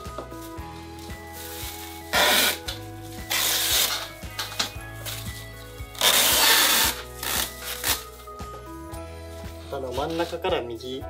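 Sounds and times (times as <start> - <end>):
masking tape tearing off roll: 1.8 - 8.3.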